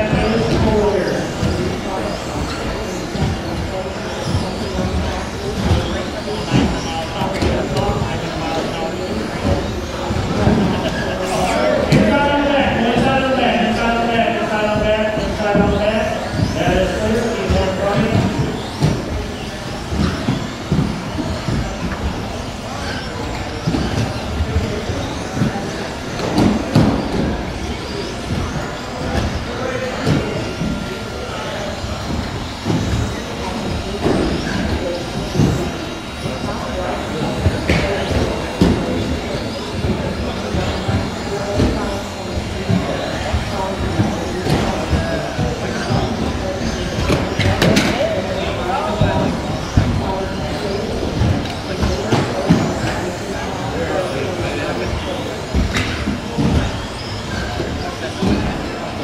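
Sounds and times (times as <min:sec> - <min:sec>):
electric motors whining: 0:00.0 - 0:59.0
hall full of voices: 0:00.0 - 0:59.0.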